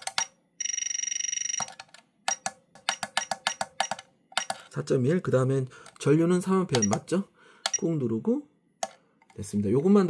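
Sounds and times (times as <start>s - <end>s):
buttons pressed: 6.7s - 7.1s.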